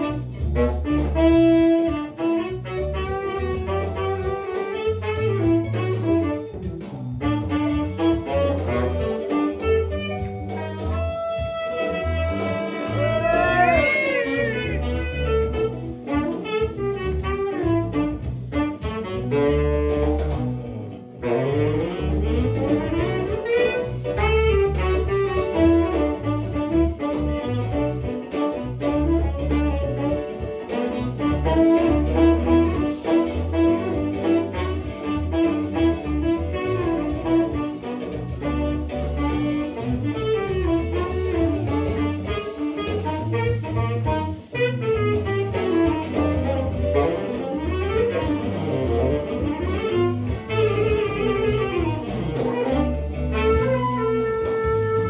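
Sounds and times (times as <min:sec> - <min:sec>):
saxophone melody: 0:00.0 - 0:55.0
walking bass: 0:00.0 - 0:55.0.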